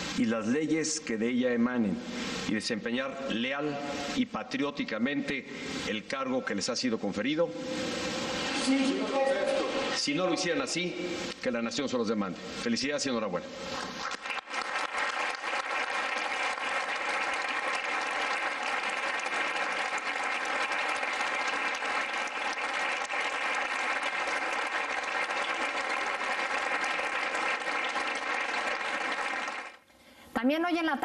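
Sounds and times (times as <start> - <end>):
audience applauding: 13.7 - 29.8.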